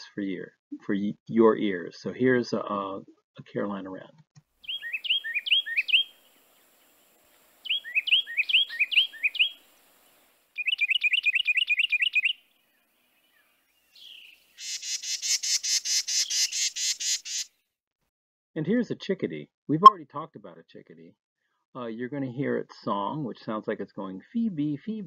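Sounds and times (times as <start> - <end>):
bird rapid noisy chatter: 14.6 - 17.5.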